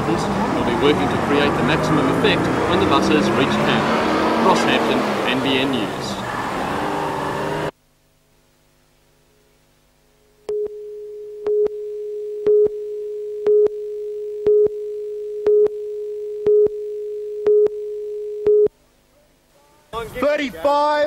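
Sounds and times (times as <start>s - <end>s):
steady line-up tone: 0.0s - 7.8s, 9.0s - 18.7s.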